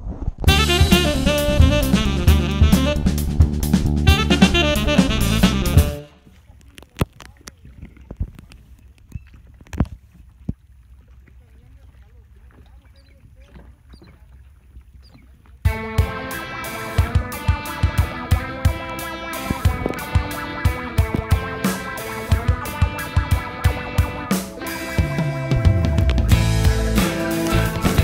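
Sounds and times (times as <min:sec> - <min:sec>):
guitar music with a beat: 0:00.5 - 0:06.0, 0:15.7 - 0:28.0
faint distant voices: 0:11.1 - 0:14.6.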